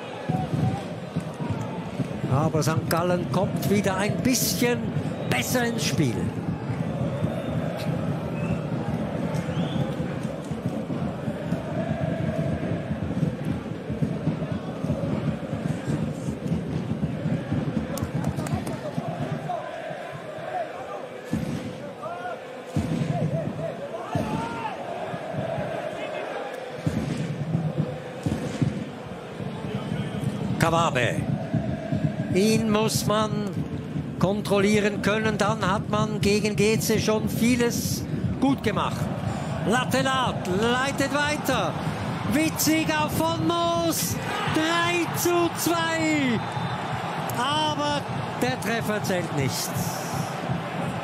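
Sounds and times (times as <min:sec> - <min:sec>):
crowd singing and chanting: 0:00.0 - 0:32.6, 0:44.1 - 0:51.0
people shouting: 0:23.9 - 0:26.4, 0:44.2 - 0:51.0.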